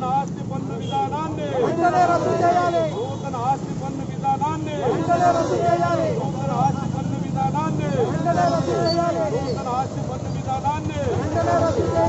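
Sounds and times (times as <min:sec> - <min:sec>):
men shouting slogans: 0:01.1 - 0:03.2, 0:04.4 - 0:07.0, 0:07.6 - 0:09.9, 0:10.7 - 0:12.0.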